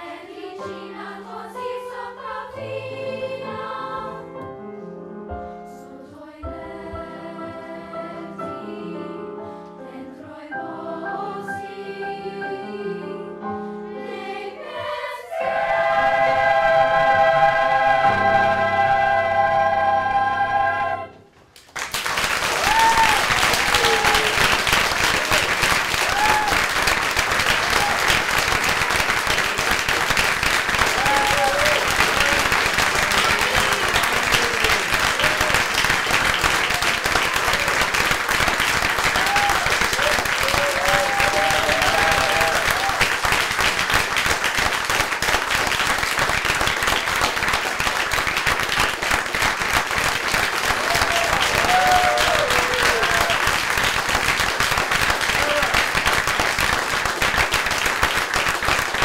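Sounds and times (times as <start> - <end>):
audience applauding: 21.6 - 59.0
voices over applause: 21.9 - 45.2, 46.0 - 59.0.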